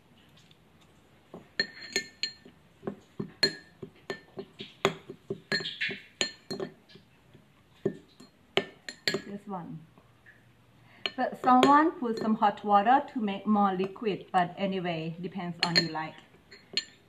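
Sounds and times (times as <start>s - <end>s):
metal spoon clinking ceramic bowl: 1.4s - 7.0s, 7.8s - 9.3s, 11.0s - 12.4s, 15.6s - 17.0s.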